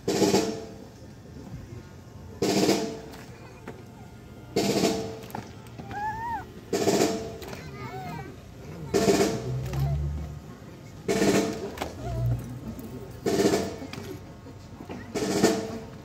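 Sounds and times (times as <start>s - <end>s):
snare drum rolls: 0.0s - 0.8s, 2.4s - 3.3s, 4.6s - 7.6s, 8.9s - 10.2s, 11.1s - 12.4s, 13.2s - 14.1s, 15.0s - 16.0s.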